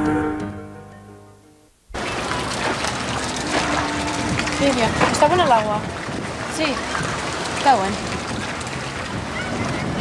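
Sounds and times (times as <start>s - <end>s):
wind buffeting microphone: 2.0s - 10.0s
faint voices: 9.0s - 10.0s.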